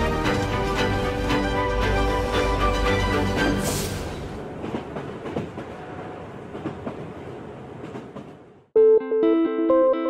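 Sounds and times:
train wheels rumbling on rails: 0.0 - 8.6.

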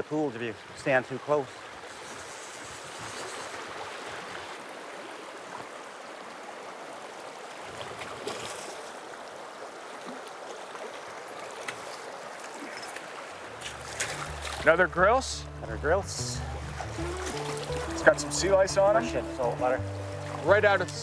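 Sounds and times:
river water over rocks: 0.0 - 15.3, 16.1 - 21.0
small splashes or knocks: 7.7 - 9.0, 9.9 - 14.8, 16.6 - 18.0.

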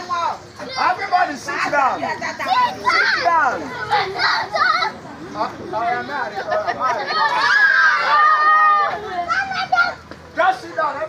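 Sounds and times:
children calling out and chattering: 0.0 - 11.0.

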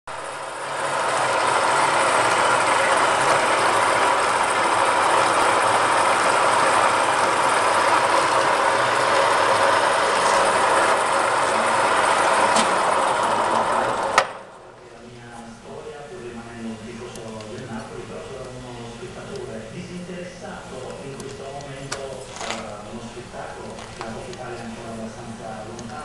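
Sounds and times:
metal lathe running: 0.1 - 26.0.

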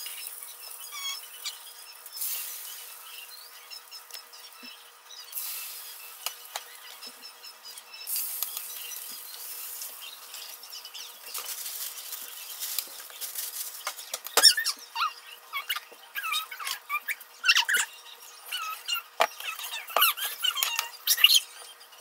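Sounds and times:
bread sizzling on a griddle: 0.0 - 3.6, 5.3 - 6.8, 8.0 - 10.7.

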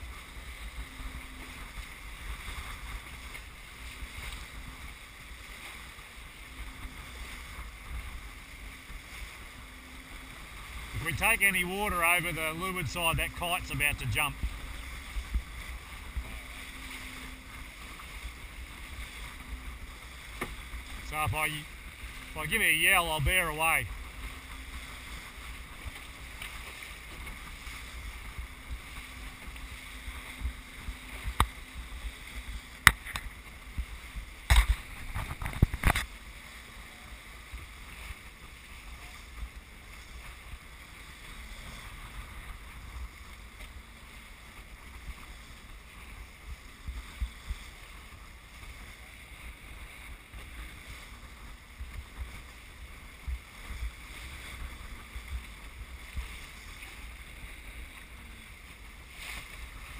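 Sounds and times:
water rushing past boat: 0.0 - 59.9
wind rumble on microphone: 12.8 - 22.5, 23.2 - 43.8, 44.6 - 59.9.

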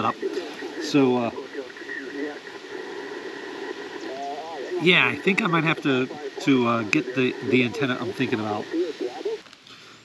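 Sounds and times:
faint voice: 0.0 - 2.4, 4.0 - 9.4
radio static hiss: 0.0 - 10.0.

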